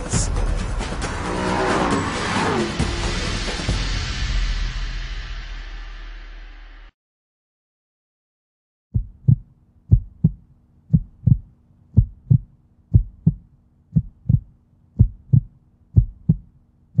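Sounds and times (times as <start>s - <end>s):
heartbeat thumps: 8.9s - 17.0s.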